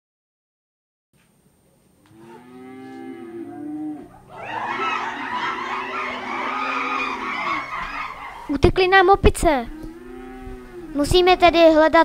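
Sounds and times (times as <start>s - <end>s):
cattle mooing: 2.1s - 8.6s, 9.6s - 11.5s.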